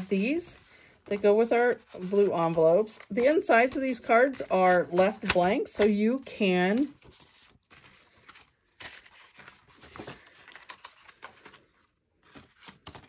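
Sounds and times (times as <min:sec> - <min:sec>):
cards rustling and tapping on table: 0:03.1 - 0:06.2.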